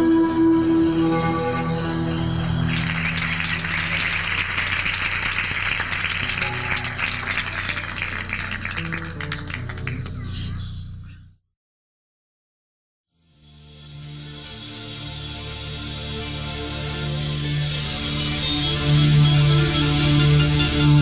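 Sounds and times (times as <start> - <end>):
folk band playing: 0.0 - 10.1
dense rattling crackling noise: 2.7 - 10.2.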